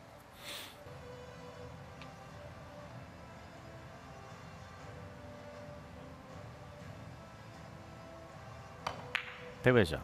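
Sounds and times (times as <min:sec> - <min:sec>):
billiard balls clicking: 0:08.8 - 0:09.5.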